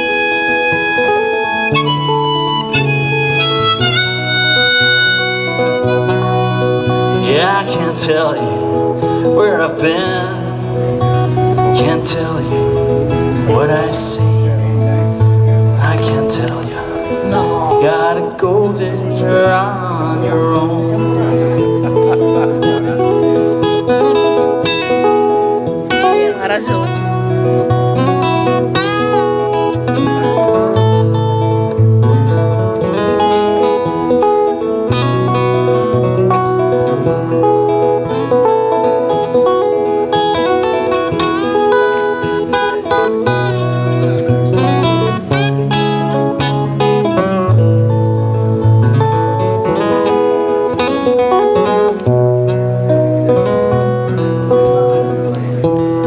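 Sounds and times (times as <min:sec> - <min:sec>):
harmonica wailing: 0:00.0 - 0:08.0
bass notes: 0:00.0 - 0:38.5, 0:39.4 - 0:56.0
acoustic guitars strumming: 0:00.0 - 0:56.0.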